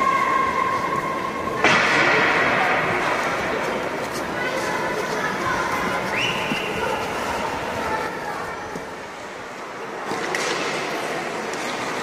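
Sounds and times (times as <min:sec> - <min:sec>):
players' voices: 0:00.0 - 0:12.0
skates on ice: 0:00.1 - 0:12.0.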